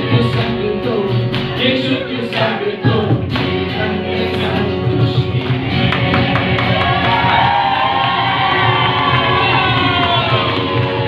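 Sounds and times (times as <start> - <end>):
crowd cheering and singing along: 0.0 - 11.0
live band playing worship song: 0.0 - 11.0.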